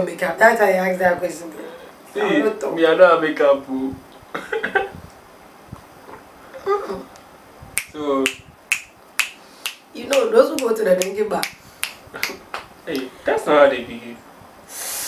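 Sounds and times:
woman talking: 0:00.0 - 0:02.7, 0:09.9 - 0:11.6
finger snapping: 0:07.8 - 0:13.1.

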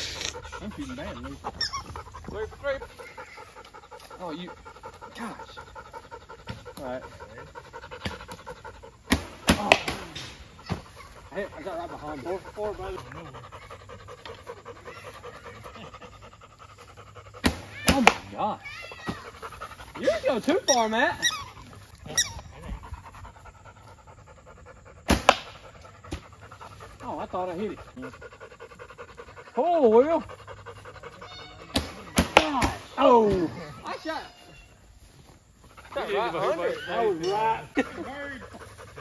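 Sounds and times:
rapid panting: 0:00.0 - 0:32.9, 0:35.4 - 0:39.0.

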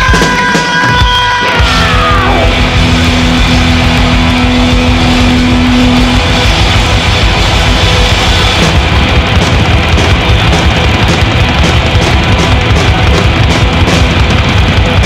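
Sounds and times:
thrash metal band playing: 0:00.0 - 0:15.0.

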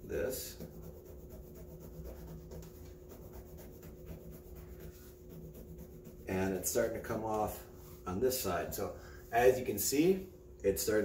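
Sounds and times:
razor scratching fabric: 0:00.0 - 0:06.9.

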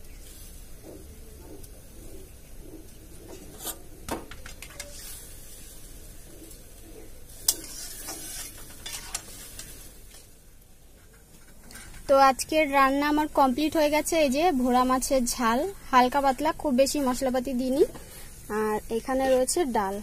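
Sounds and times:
spoon stirring in metal pot: 0:06.3 - 0:09.7.

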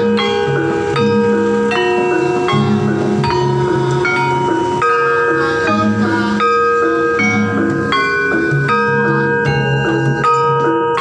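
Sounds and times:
lower repeating tones: 0:00.0 - 0:11.0
small kettle gongs ringing: 0:00.0 - 0:11.0.

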